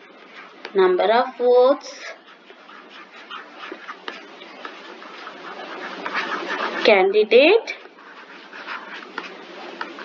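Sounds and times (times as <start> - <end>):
stylus scratching on tablet screen: 0.0 - 10.0.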